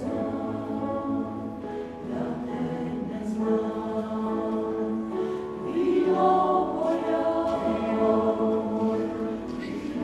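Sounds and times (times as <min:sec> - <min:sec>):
mixed choir singing chords: 0:00.0 - 0:10.0.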